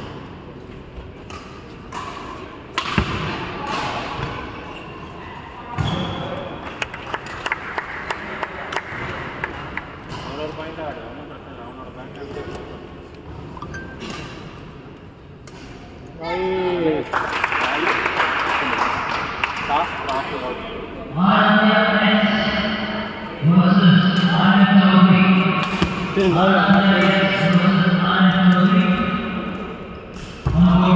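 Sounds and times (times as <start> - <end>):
rackets striking shuttlecock: 1.3 - 4.3.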